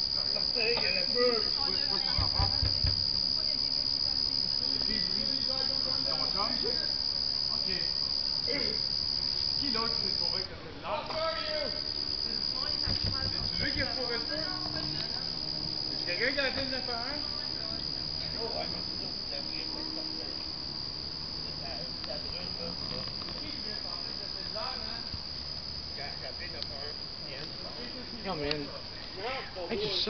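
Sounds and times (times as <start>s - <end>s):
crickets chirring: 0.0s - 30.0s
faint distant voices: 0.0s - 30.0s.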